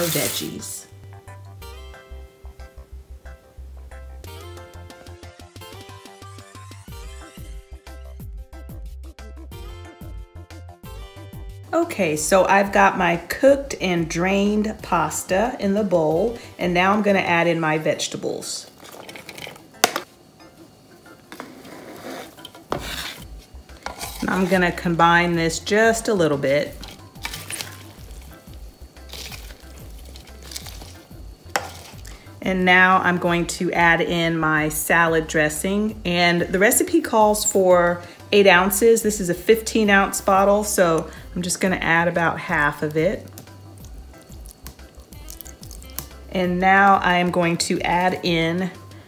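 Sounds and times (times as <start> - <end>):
soft background music: 0.0 - 49.0
spoon scraping plastic bowl: 21.4 - 24.8, 29.1 - 32.1.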